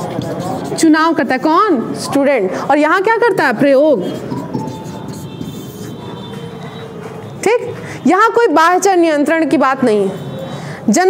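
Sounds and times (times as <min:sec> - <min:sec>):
marker writing on whiteboard: 0:00.0 - 0:02.2, 0:02.8 - 0:07.4
room noise: 0:00.0 - 0:09.0.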